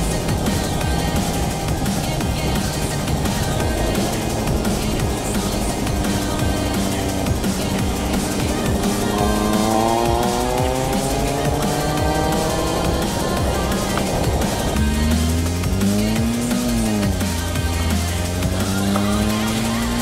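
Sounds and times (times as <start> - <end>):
car engine accelerating: 0.0 - 20.0
electronic dance music: 0.0 - 20.0.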